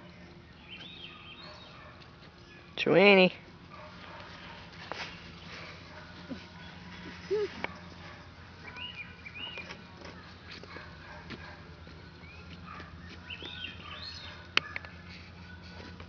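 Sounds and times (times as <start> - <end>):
steady low hum: 0.0 - 16.0
high chirping animal calls: 12.2 - 14.5.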